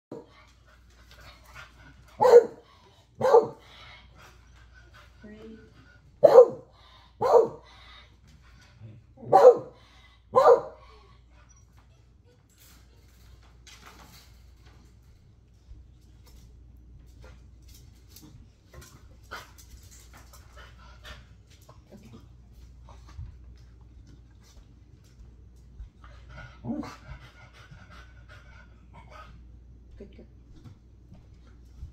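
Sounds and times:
dog panting: 0.1s - 12.2s, 18.3s - 29.8s
dog barking: 2.2s - 2.6s, 3.2s - 3.6s, 6.2s - 7.6s, 9.2s - 10.8s.

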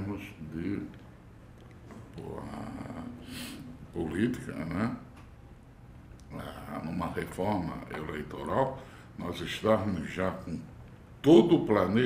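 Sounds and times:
man speaking: 0.0s - 1.0s, 2.1s - 5.1s, 6.2s - 12.0s
low steady room hum: 0.0s - 12.0s.

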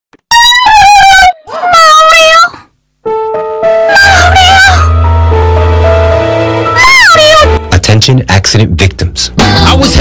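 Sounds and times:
high-pitched wailing cries: 0.4s - 2.6s, 3.9s - 5.0s, 6.7s - 7.6s.

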